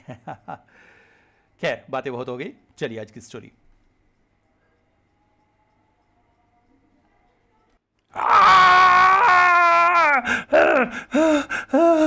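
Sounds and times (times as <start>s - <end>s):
person screaming in pain: 8.2s - 12.0s.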